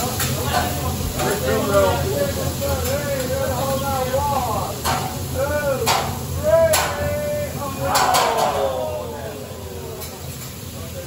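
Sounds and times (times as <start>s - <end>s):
food sizzling on a hotplate: 0.0s - 11.0s
voices chattering: 0.0s - 11.0s.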